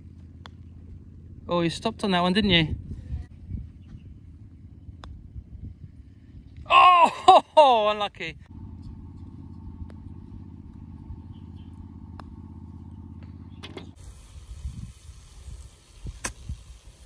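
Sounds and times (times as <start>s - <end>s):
pulsing engine hum: 0.0s - 7.7s, 8.4s - 17.0s
putter striking golf ball: 0.1s - 1.0s, 8.7s - 14.0s.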